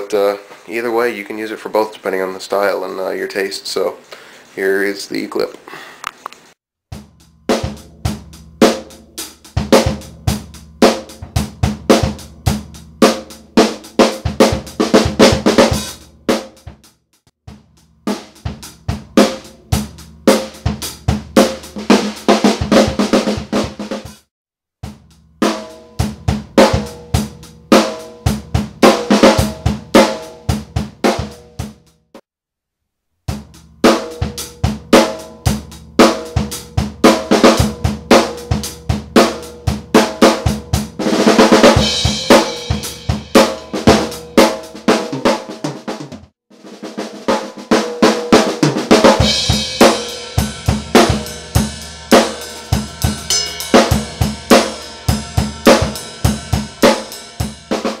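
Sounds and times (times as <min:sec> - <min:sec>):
drum kit grooves with fills: 0:06.9 - 0:32.2, 0:33.3 - 0:58.0
crash cymbals: 0:49.4 - 0:57.7.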